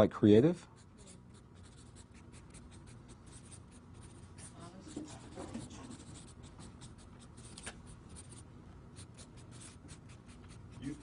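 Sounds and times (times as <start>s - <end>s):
marker writing on paper: 0.8s - 8.4s, 9.0s - 11.0s.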